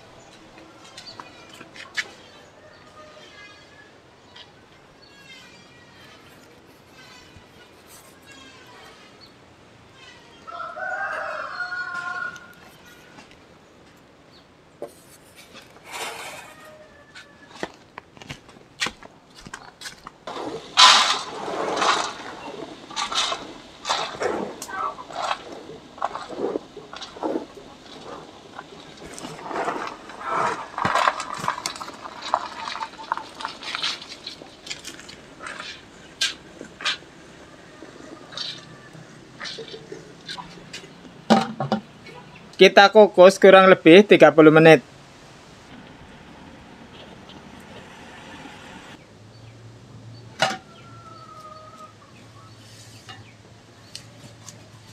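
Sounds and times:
rooster crowing: 10.3 - 12.8, 16.0 - 17.8, 36.8 - 39.8, 50.4 - 52.1.

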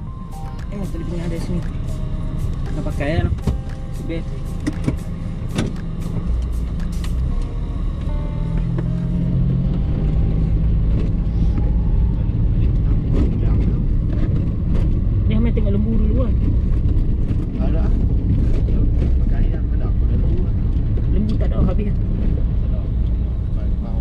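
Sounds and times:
car engine running: 0.0 - 24.0
road rumble inside car: 0.0 - 24.0.

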